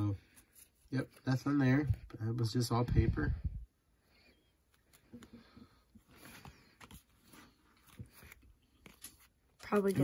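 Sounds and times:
paper cards fanned by hand: 6.1s - 10.0s.

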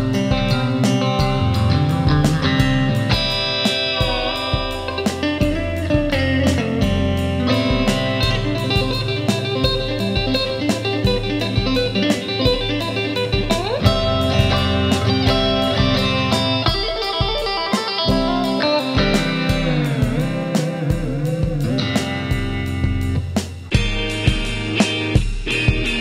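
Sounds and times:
electric guitar riff: 0.0s - 26.0s
steady beat: 0.0s - 26.0s.

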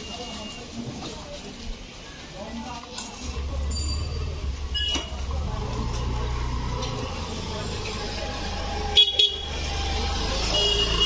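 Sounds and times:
vehicle engine low rumble: 3.2s - 11.0s.

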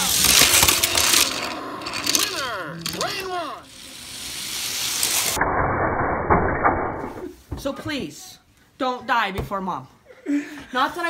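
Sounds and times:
toy car rattling in plastic funnel: 0.0s - 5.4s.

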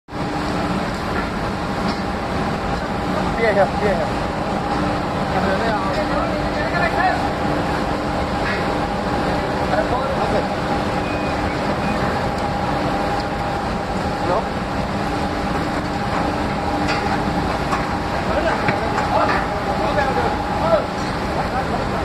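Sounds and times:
industrial machinery rumble: 0.1s - 22.0s
steady machine hum: 0.1s - 22.0s.

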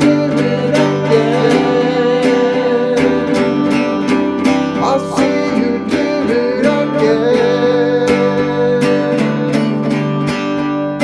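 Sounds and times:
person singing worship song: 0.0s - 10.1s
acoustic guitar strumming: 0.0s - 11.0s.

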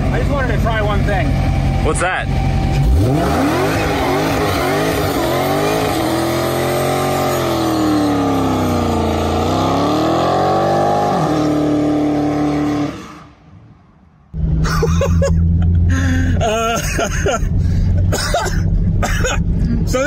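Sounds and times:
car engine revving during burnout: 2.3s - 13.4s.

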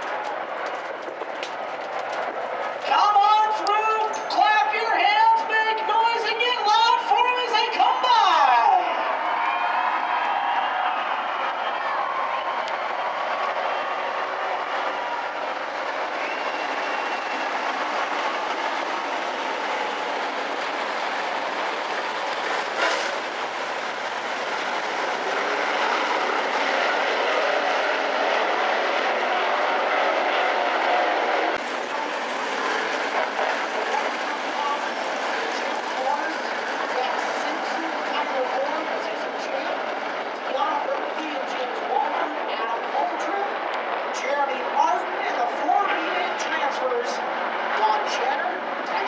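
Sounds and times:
race car engines droning: 0.0s - 49.0s.

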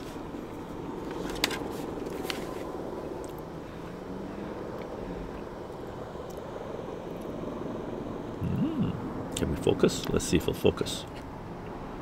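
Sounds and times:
voiced hum: 0.0s - 12.0s
low background rumble: 0.2s - 12.0s.

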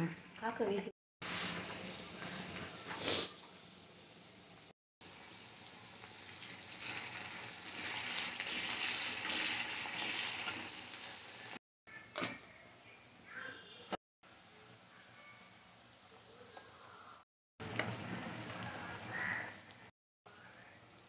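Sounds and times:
onions sizzling in hot oil: 5.0s - 11.6s
spatula stirring: 6.6s - 11.6s.

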